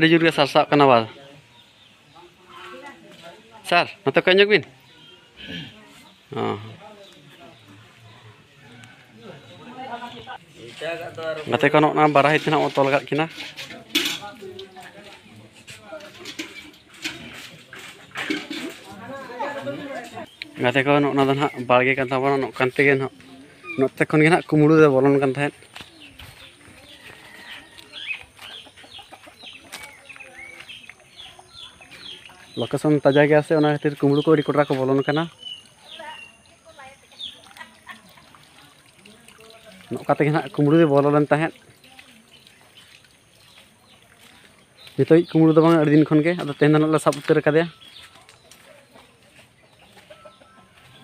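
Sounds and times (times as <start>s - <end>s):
birds chirping: 0.0s - 51.0s
chicken clucking: 15.0s - 36.4s, 42.3s - 51.0s.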